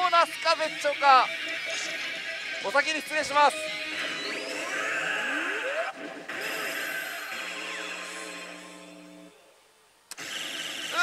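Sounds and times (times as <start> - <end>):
slot machine sound effects: 0.0 - 9.1
held electronic tones: 0.0 - 9.3.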